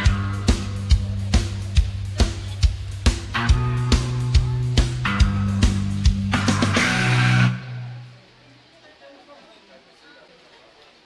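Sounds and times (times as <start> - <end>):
folk punk band playing: 0.0 - 8.2
faint background noise: 0.0 - 11.0
guitar chord ringing: 3.4 - 8.2.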